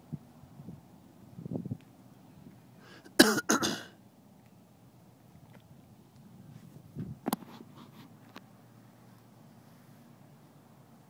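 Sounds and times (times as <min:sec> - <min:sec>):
person coughing: 0:03.2 - 0:03.9.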